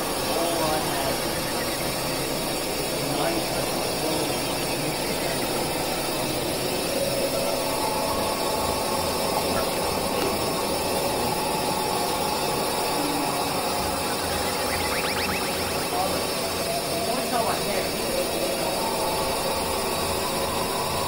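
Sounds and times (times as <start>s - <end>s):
experimental noise drone: 0.0s - 21.0s.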